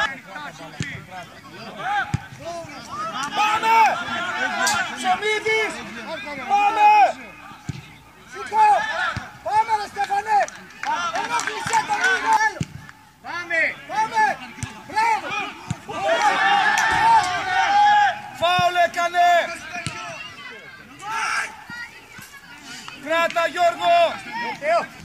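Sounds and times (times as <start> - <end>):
crowd shouting high-pitched cries: 1.6 - 7.4, 13.4 - 25.0.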